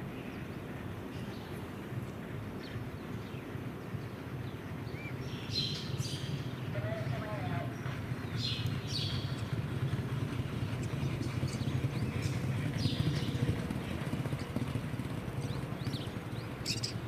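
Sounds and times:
horses galloping on turf: 0:06.5 - 0:17.0.

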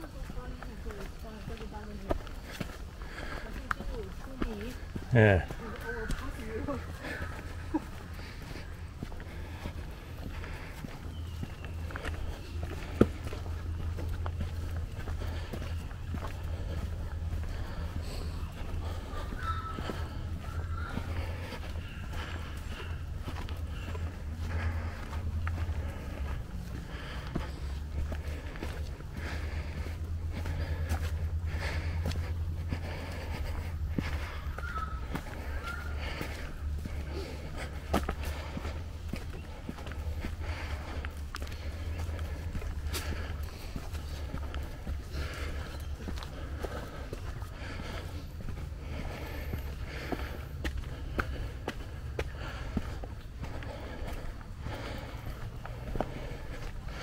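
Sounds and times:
footsteps on dirt trail: 0:00.0 - 0:57.0.

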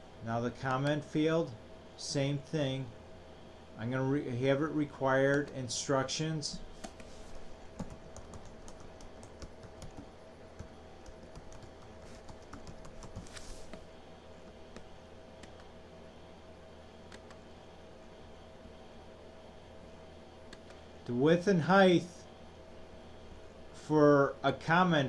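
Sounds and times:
steady low hum: 0:00.0 - 0:25.0
computer keyboard typing: 0:07.8 - 0:13.3, 0:14.5 - 0:15.7, 0:17.1 - 0:17.4.

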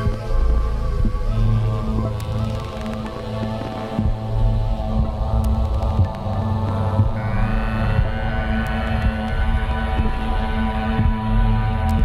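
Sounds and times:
synthesizer ambient drone: 0:00.0 - 0:12.0.

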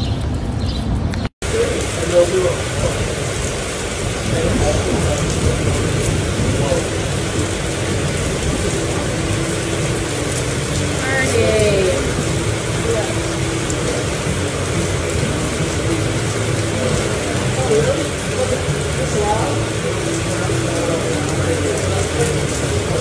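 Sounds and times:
faint indistinct voices: 0:04.2 - 0:23.0.

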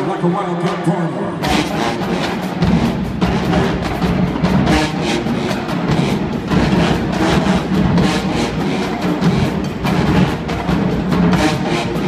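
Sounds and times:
drumline strokes: 0:00.0 - 0:12.0
brass section holding chords: 0:00.2 - 0:12.0.

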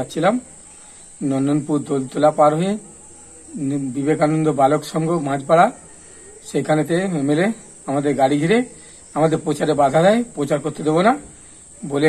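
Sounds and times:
man speaking: 0:00.0 - 0:00.5, 0:01.2 - 0:02.9, 0:03.5 - 0:05.8, 0:06.4 - 0:12.0
faint high-pitched whine: 0:00.0 - 0:12.0.

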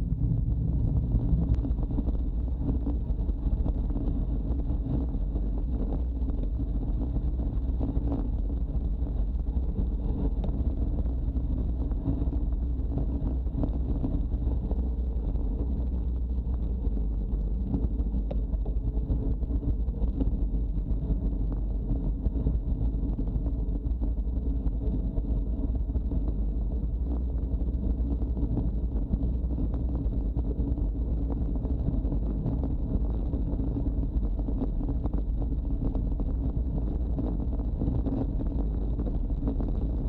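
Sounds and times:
faint high whine: 0:00.0 - 0:40.0
road rumble: 0:00.0 - 0:40.0
wind rush on microphone: 0:00.0 - 0:40.0.

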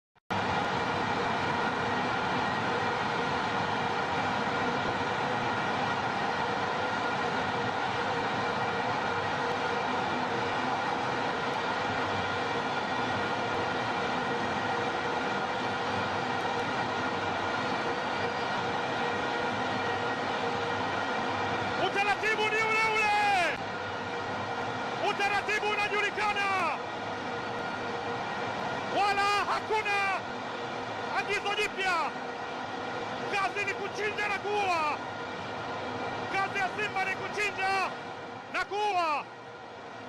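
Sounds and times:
stadium crowd noise: 0:00.2 - 0:40.0.

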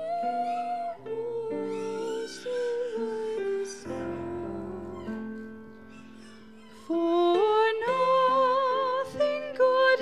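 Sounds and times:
woman singing a hymn: 0:00.0 - 0:05.4, 0:06.8 - 0:10.0
piano chords: 0:00.0 - 0:10.0.

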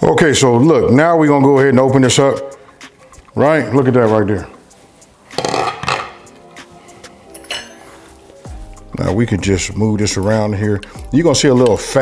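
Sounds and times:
quiet background music: 0:00.0 - 0:12.0
light clink: 0:07.3 - 0:08.0.

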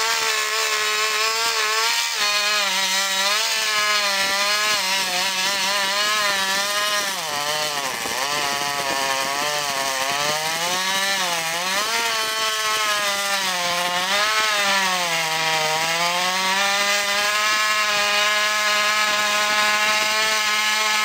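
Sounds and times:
chainsaw cutting wood: 0:00.0 - 0:21.0.

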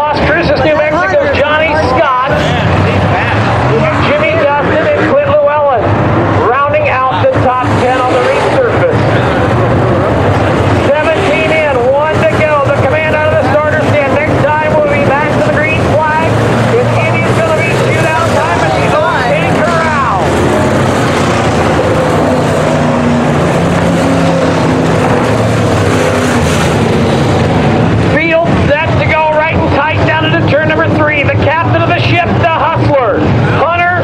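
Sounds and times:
race car engines roaring: 0:00.0 - 0:34.0.

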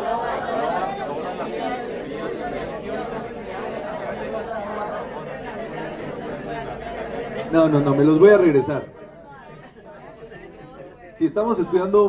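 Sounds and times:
group reading aloud: 0:00.0 - 0:12.0.

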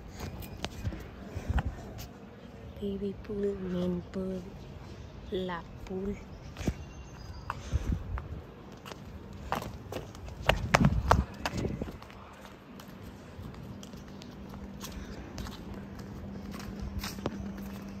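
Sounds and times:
footsteps on pavement: 0:00.0 - 0:04.6, 0:05.5 - 0:18.0.

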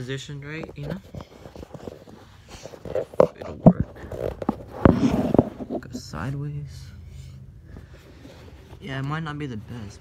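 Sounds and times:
fabric rustling: 0:00.7 - 0:06.3.

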